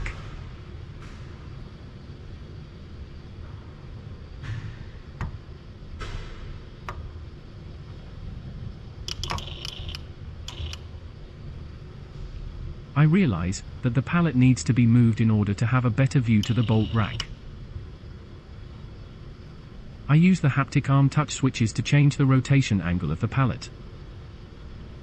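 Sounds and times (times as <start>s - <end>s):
low machine hum: 0.0s - 25.0s
robot tool metallic clicks: 9.1s - 9.8s.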